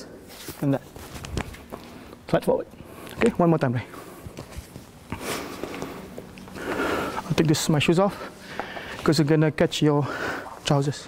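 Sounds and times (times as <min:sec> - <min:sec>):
clothing rustle: 0:00.2 - 0:02.2.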